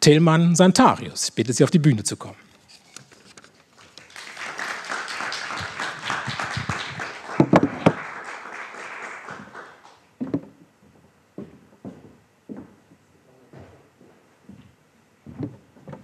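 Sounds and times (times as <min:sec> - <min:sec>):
audience applauding: 0:03.8 - 0:10.0.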